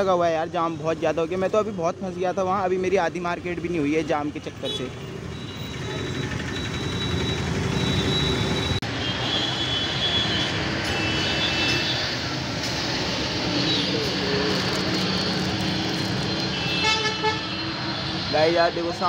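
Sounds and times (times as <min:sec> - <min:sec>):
traffic engines running: 0:00.0 - 0:19.0
car horns honking: 0:16.0 - 0:18.2.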